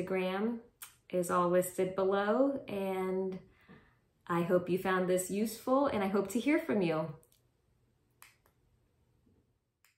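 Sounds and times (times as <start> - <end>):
woman speaking: 0.0 - 3.5, 4.2 - 7.3.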